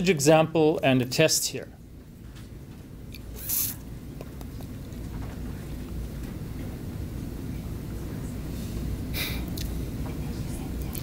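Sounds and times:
steady low rumble: 0.0s - 11.0s
short hiss: 3.3s - 3.8s.

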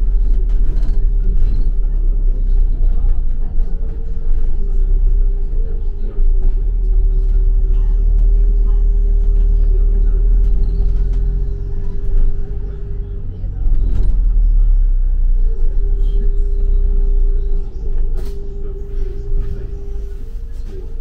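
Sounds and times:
bus engine and road rumble: 0.0s - 21.0s
wavering humming tone: 0.0s - 21.0s.

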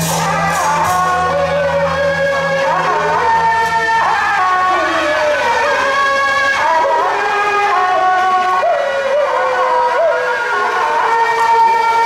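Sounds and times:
double-reed horn melody: 0.0s - 8.7s.

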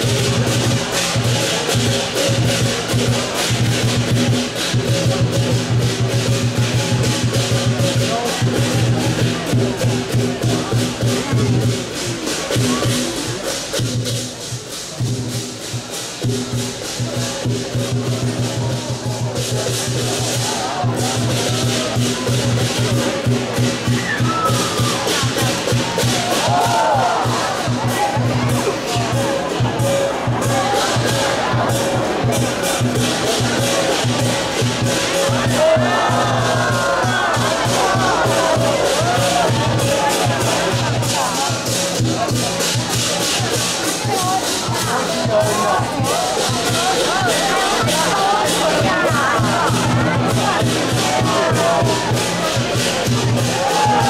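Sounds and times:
crashing cymbals: 0.0s - 48.9s
big drum beating: 0.0s - 54.0s
faint crowd voices: 0.0s - 54.0s.

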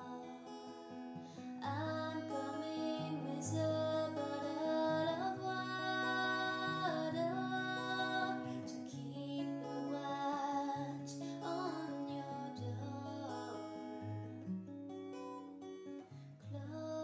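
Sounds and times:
woman singing: 0.0s - 0.8s, 1.6s - 14.2s, 16.4s - 17.0s
acoustic guitar lullaby: 0.0s - 17.0s.

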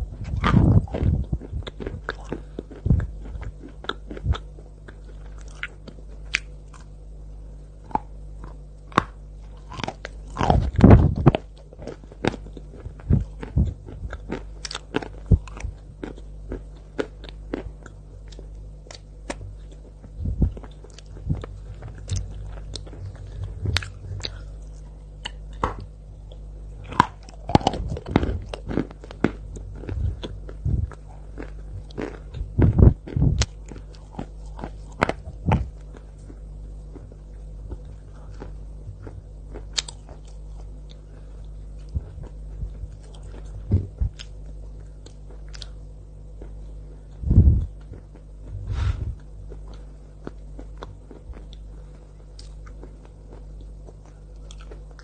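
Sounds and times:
steady low hum: 0.0s - 55.0s
chalk crunching while chewed: 0.2s - 7.0s, 7.8s - 48.6s, 49.2s - 55.0s.

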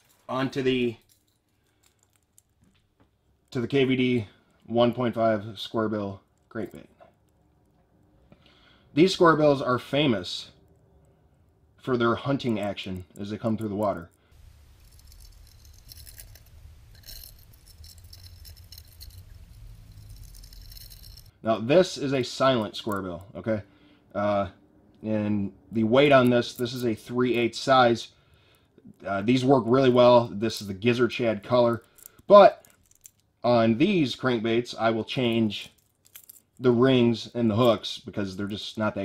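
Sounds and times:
faint crackling and clicking: 12.3s - 21.3s.

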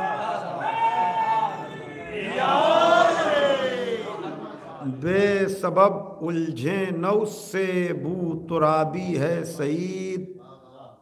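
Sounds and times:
man chanting verse melodically: 4.8s - 11.0s.

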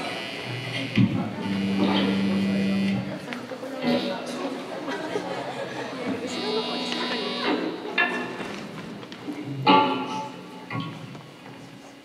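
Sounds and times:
audience voices: 0.0s - 12.0s.

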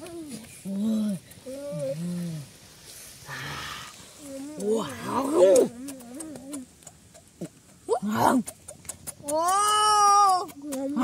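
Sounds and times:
rustle: 0.0s - 11.0s.

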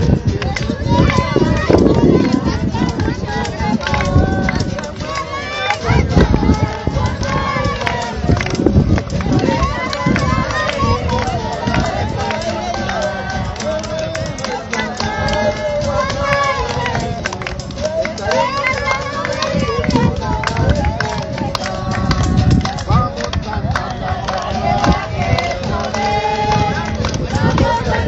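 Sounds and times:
indistinct voices of people: 0.0s - 28.0s.

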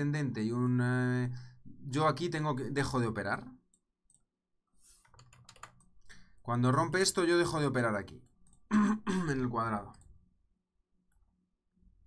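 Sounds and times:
computer keys clicking: 5.0s - 6.0s, 8.2s - 8.7s.

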